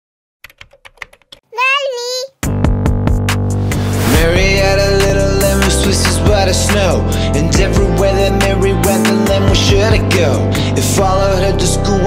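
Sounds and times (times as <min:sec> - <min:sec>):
keyboard keys clicking: 0:00.4 - 0:01.5
high childlike voice: 0:01.4 - 0:02.4.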